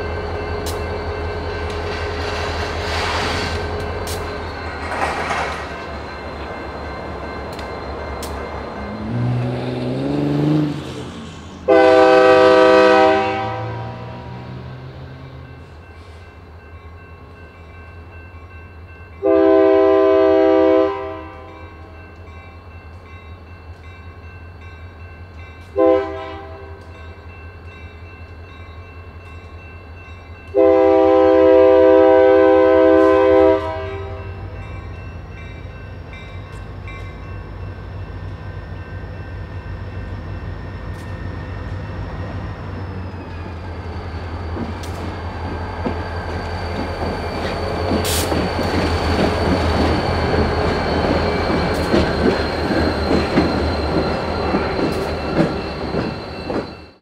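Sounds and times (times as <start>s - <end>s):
locomotive horn: 11.7s - 14.6s, 19.2s - 21.9s, 25.7s - 26.9s, 30.5s - 34.4s
locomotive engine running: 34.3s - 56.7s.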